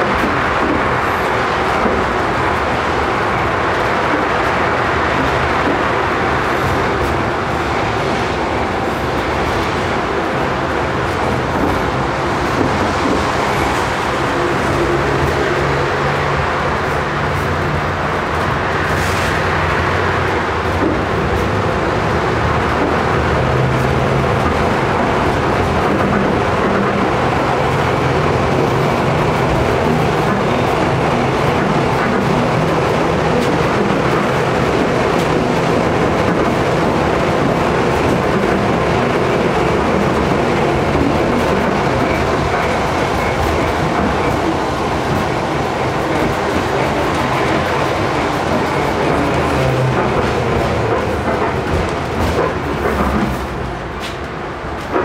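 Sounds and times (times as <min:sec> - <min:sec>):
tram wheels rolling on rail: 0:00.0 - 0:55.0.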